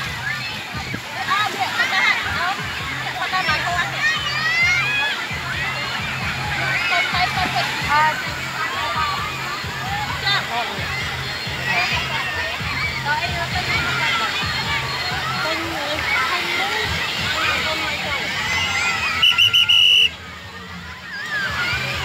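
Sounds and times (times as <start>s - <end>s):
small waves splashing: 0.0s - 18.3s
children shouting and squealing: 0.0s - 22.0s.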